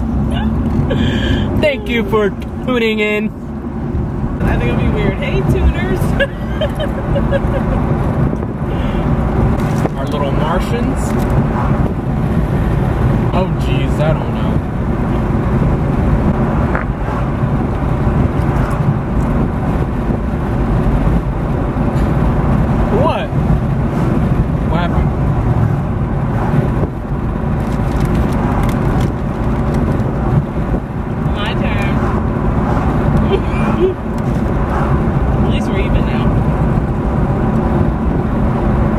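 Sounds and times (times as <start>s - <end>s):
car cabin road and engine rumble: 0.0s - 38.9s.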